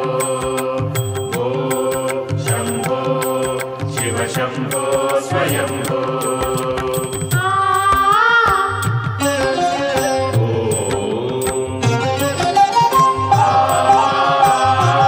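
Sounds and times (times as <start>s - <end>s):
devotional chant singing: 0.0s - 15.0s.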